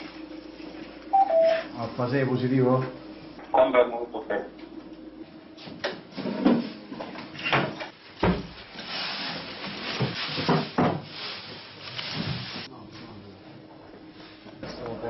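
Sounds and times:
rustling while rummaging: 0:08.5 - 0:12.7.

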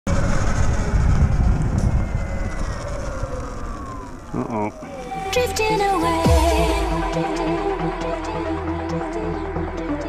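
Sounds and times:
wind and road noise: 0:00.0 - 0:05.8
electric dirt bike motor whining: 0:00.1 - 0:05.9.

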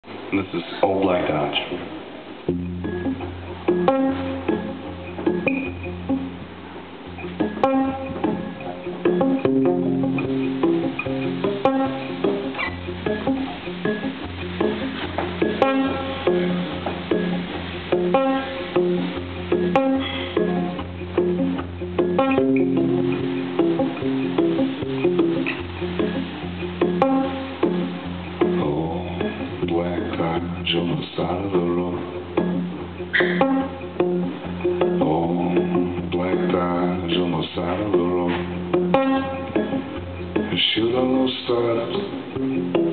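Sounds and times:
guitar picking: 0:00.0 - 0:42.9.

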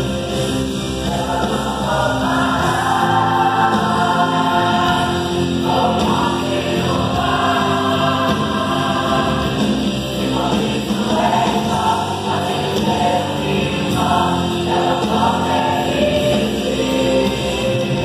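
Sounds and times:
gospel choir singing: 0:00.0 - 0:18.0.

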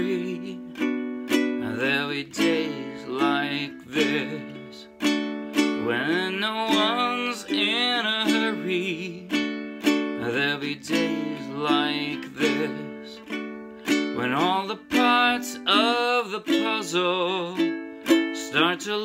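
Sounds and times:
man singing: 0:00.0 - 0:19.0
ukulele strumming: 0:00.0 - 0:19.0.

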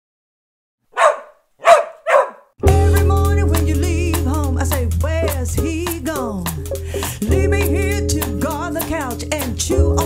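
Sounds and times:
dog barking: 0:00.9 - 0:02.6
music with steady bass line: 0:02.6 - 0:10.0.

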